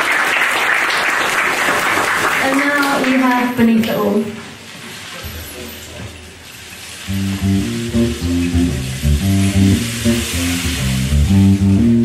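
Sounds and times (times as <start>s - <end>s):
high hiss: 6.6s - 12.0s
live band bass and guitar: 7.1s - 12.0s.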